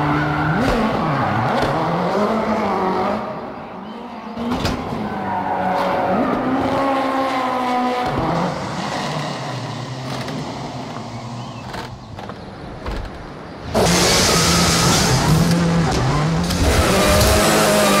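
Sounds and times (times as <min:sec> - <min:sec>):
rally car engine revving: 0:00.0 - 0:03.6, 0:04.3 - 0:12.1, 0:12.8 - 0:18.0
tyres squealing and skidding: 0:00.0 - 0:12.6, 0:13.5 - 0:18.0.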